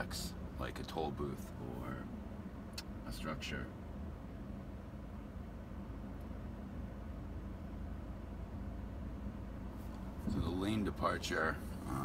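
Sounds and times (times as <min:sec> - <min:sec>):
car engine idling in cabin: 0:00.0 - 0:12.0.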